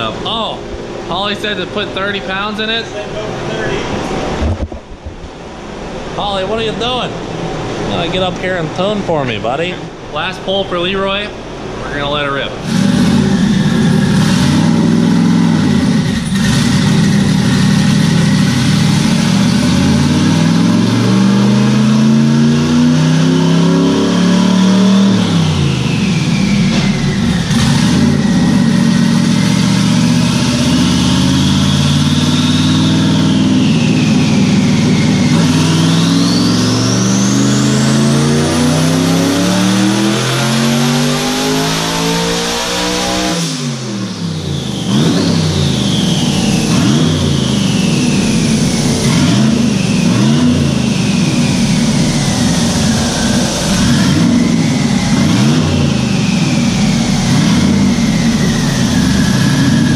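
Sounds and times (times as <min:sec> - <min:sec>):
car engine revving: 0:00.0 - 0:59.9
turbo whine: 0:11.8 - 0:59.9.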